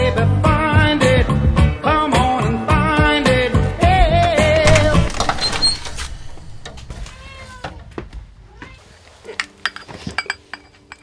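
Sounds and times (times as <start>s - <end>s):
cat meowing: 6.9s - 7.8s.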